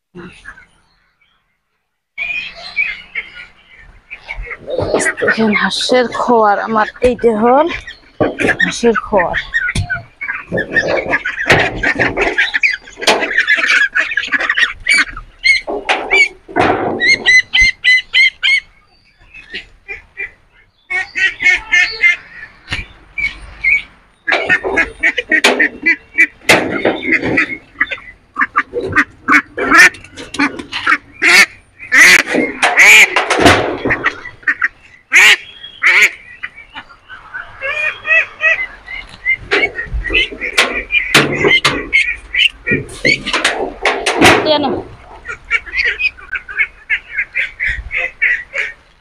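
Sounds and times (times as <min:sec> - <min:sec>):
ducks quacking: 0:02.2 - 0:49.0.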